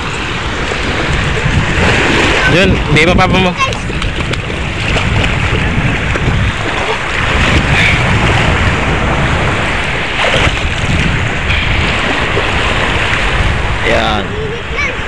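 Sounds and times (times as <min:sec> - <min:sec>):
people wading and splashing: 0:00.0 - 0:15.0
shallow sea water washing: 0:00.0 - 0:15.0
wind buffeting microphone: 0:00.0 - 0:15.0.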